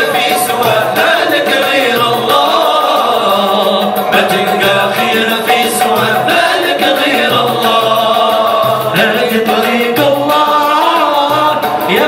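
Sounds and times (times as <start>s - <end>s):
hand drum beats: 0.0s - 12.0s
male chorus singing: 0.0s - 12.0s.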